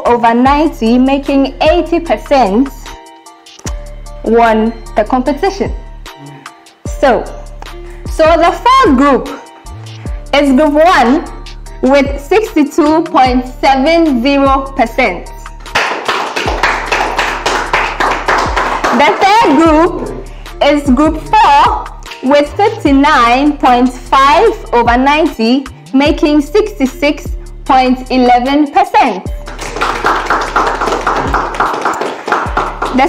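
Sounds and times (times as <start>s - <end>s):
music with deep kick drum: 3.7s - 15.8s, 16.5s - 28.5s, 29.3s - 31.7s, 32.4s - 33.0s
people clapping: 15.6s - 19.7s, 29.4s - 33.0s.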